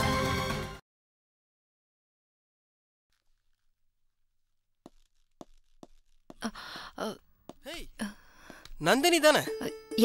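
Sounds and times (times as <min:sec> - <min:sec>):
footsteps on hard floor: 0:04.8 - 0:06.4
person sighing: 0:06.4 - 0:07.2.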